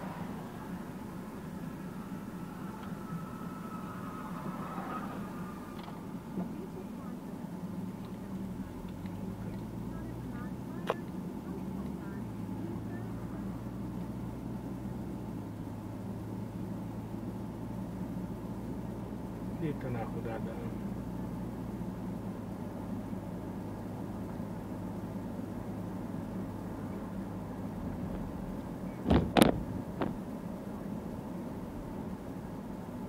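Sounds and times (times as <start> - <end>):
car engine hum and road noise: 0.0 - 33.0.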